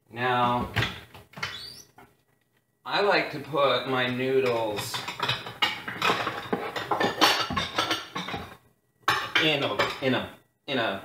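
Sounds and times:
dishes clinking and clattering: 4.4s - 10.1s.

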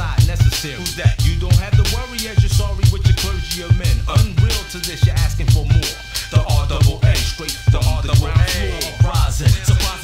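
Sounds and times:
heavy bass: 0.0s - 10.0s
rapping over a drum beat: 0.0s - 10.0s.

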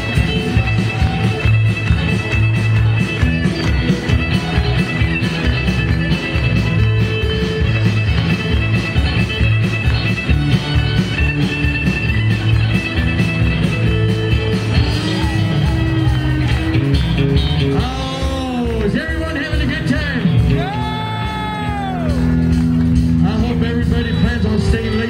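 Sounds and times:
country band playing: 0.0s - 25.0s.

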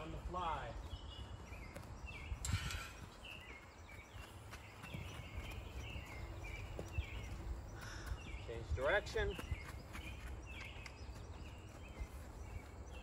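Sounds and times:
birds chirping: 0.0s - 13.0s
hoof thuds on dirt: 0.0s - 13.0s.

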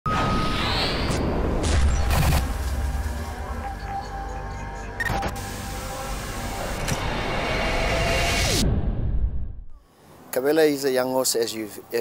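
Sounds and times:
low rumble: 1.1s - 9.8s
rising whoosh: 6.5s - 9.8s
deep bass hit: 8.2s - 9.7s.

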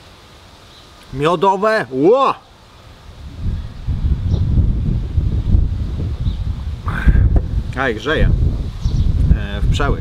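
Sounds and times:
wind buffeting microphone: 3.0s - 10.0s.

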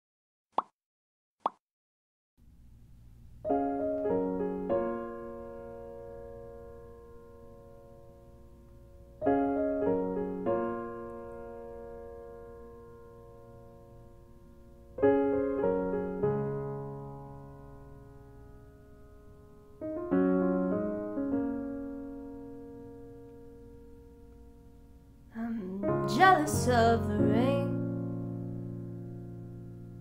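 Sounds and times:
piano chord ringing: 3.4s - 30.0s.

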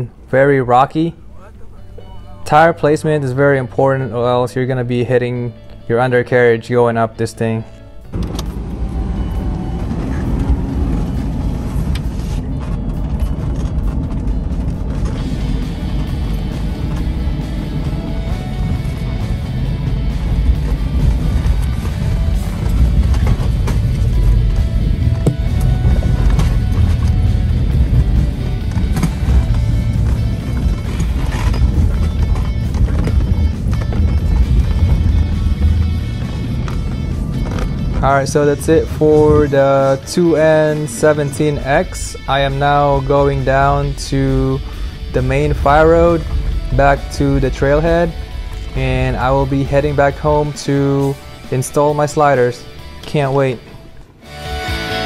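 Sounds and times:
background music: 0.0s - 55.0s
engine working uphill: 7.8s - 55.0s.

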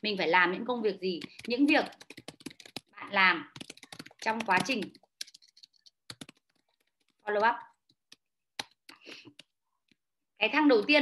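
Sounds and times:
typing on computer keyboard: 1.0s - 10.0s.

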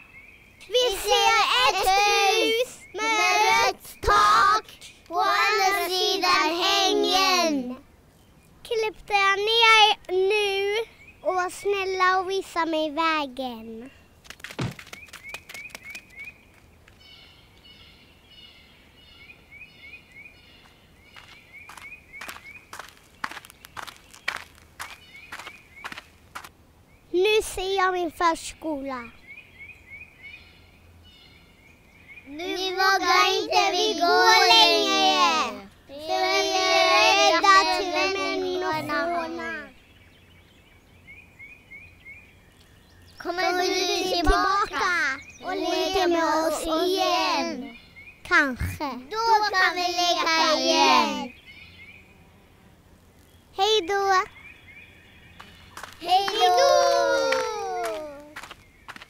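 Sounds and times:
child's voice: 0.6s - 7.8s, 8.7s - 14.0s, 27.1s - 29.2s, 32.3s - 39.8s, 43.2s - 51.3s, 53.6s - 54.3s, 56.0s - 58.5s
young children singing: 0.7s - 7.6s, 32.4s - 39.7s
footsteps knocking: 14.3s - 15.8s
bird chirps: 14.7s - 26.1s, 44.6s - 45.7s.

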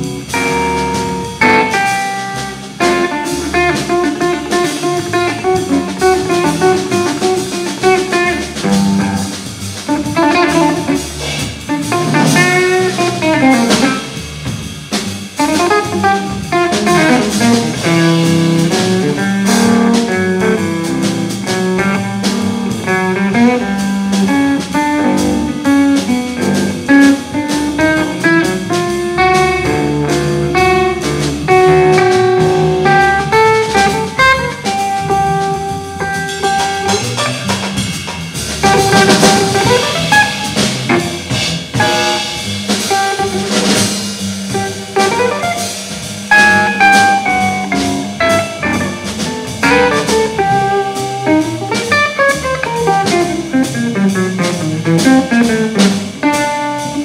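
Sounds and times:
drum kit cymbal strokes: 0.0s - 57.0s
electric guitar playing lines: 0.0s - 57.0s
walking upright bass: 0.0s - 57.0s.

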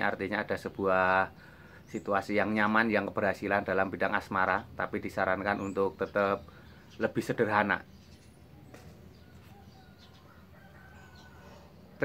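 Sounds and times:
faint distant bird calls: 0.0s - 12.0s.

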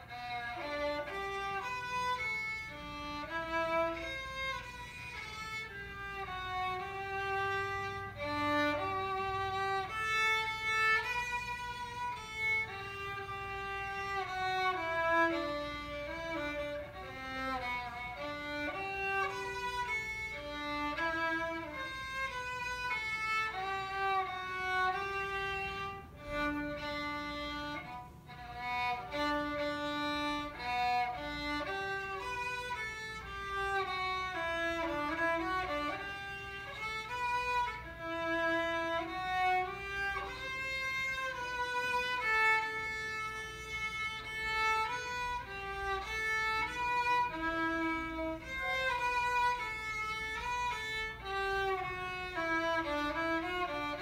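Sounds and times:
solo violin melody: 0.0s - 54.0s.

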